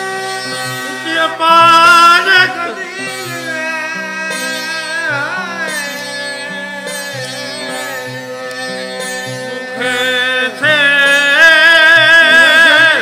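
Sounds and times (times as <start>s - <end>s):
plucked lutes strummed drone: 0.0s - 13.0s
sliding lute note: 0.0s - 13.0s.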